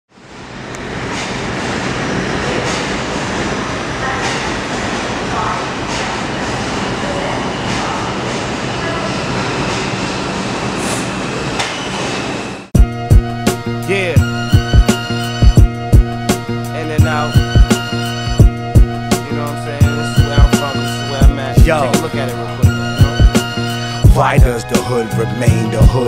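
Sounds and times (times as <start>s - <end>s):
subway train wheels rumbling: 0.1s - 26.0s.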